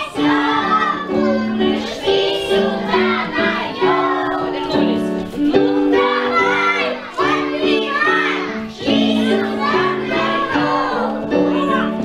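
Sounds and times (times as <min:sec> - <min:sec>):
children singing: 0:00.0 - 0:12.0
instrumental accompaniment: 0:00.0 - 0:12.0.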